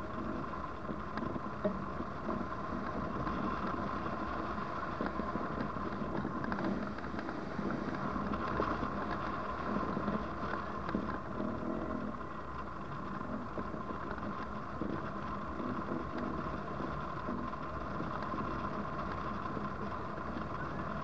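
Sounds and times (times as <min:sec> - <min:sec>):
rushing airflow over microphone: 0:00.0 - 0:21.0.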